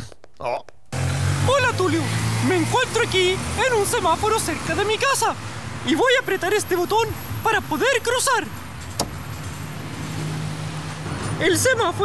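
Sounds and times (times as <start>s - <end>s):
vehicle engine hum: 0.6s - 12.0s.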